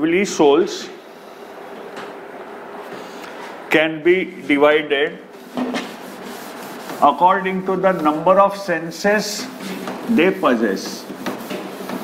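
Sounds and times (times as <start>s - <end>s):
duster scrubbing a chalkboard: 4.8s - 12.0s.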